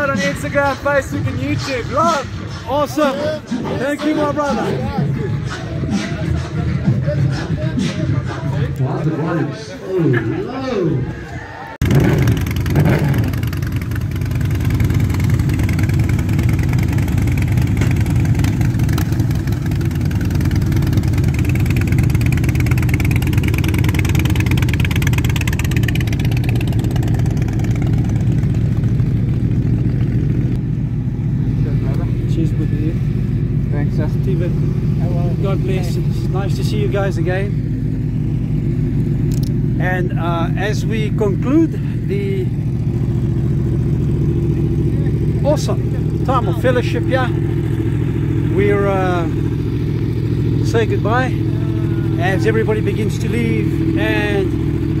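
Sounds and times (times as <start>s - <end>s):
motorcycle engine idling: 11.8s - 55.0s.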